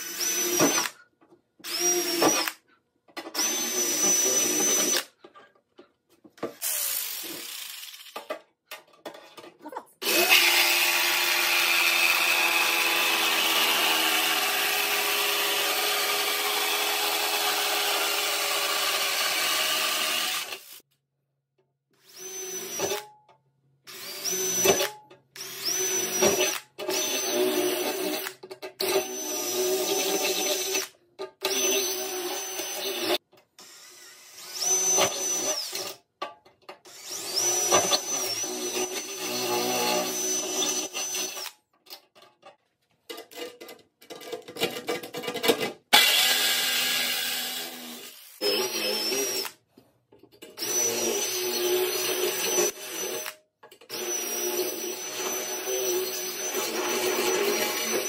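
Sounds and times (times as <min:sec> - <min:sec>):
cordless drill boring steel: 0:00.0 - 0:01.0, 0:01.6 - 0:02.6, 0:03.4 - 0:05.1, 0:06.5 - 0:08.2, 0:10.0 - 0:20.8, 0:22.0 - 0:23.1, 0:23.9 - 0:36.0, 0:36.9 - 0:41.6, 0:45.9 - 0:49.6, 0:50.6 - 0:58.0.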